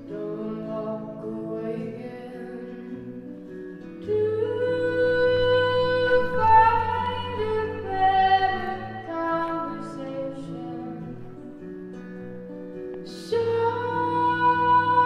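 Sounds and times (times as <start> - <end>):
woman singing: 0.0 - 11.6, 13.0 - 15.0
guitar accompaniment: 0.0 - 15.0.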